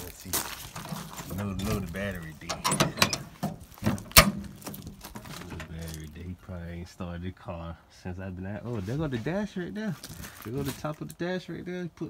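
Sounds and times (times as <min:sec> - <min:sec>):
man speaking: 0:00.0 - 0:03.3, 0:05.2 - 0:12.0
metallic door clunk: 0:01.0 - 0:05.7.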